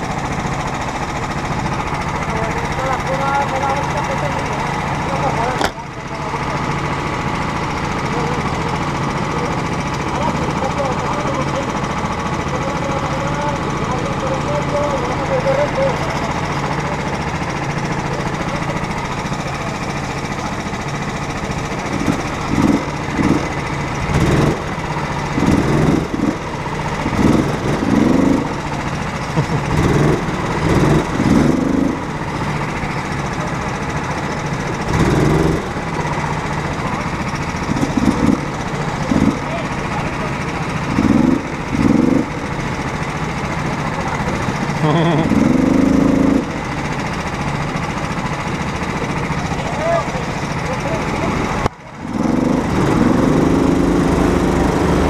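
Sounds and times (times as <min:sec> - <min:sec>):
go-kart engines idling: 0:00.0 - 0:55.0
engine revving bursts: 0:21.3 - 0:33.2, 0:34.2 - 0:47.2, 0:48.2 - 0:55.0.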